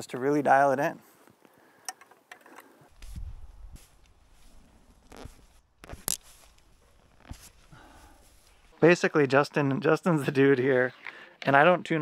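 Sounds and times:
arrows scraping and clicking: 0:03.0 - 0:08.7.

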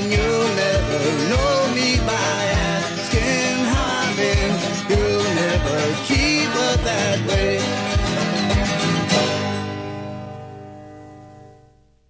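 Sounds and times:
guitar and bass chord ringing: 0:00.0 - 0:12.0.

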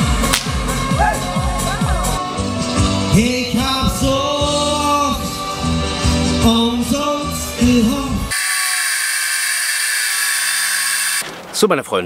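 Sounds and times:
man singing: 0:00.0 - 0:08.3
angle grinder cutting metal: 0:08.3 - 0:11.3.

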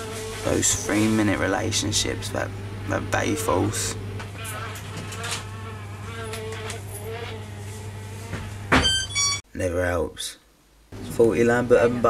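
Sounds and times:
housefly buzzing: 0:00.0 - 0:01.2, 0:03.1 - 0:09.4
low electrical hum: 0:00.0 - 0:12.0.

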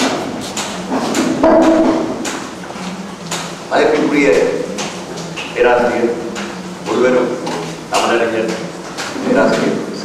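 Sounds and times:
man speaking into a microphone: 0:03.7 - 0:04.7, 0:05.6 - 0:10.0.

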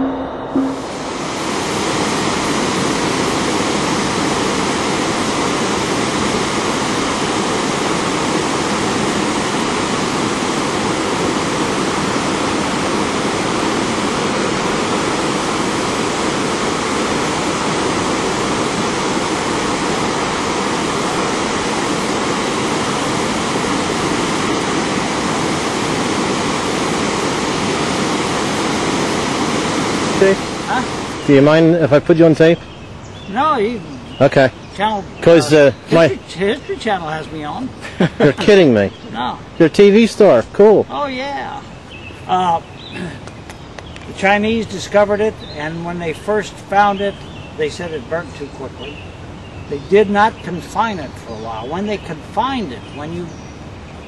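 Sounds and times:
water rushing over a dam: 0:01.0 - 0:32.6.

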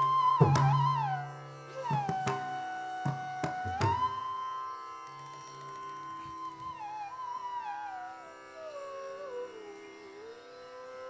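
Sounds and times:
long sustained melodic note: 0:00.0 - 0:11.0.

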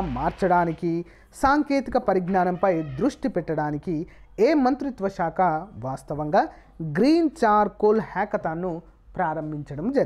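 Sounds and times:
person reading aloud: 0:00.0 - 0:10.0.

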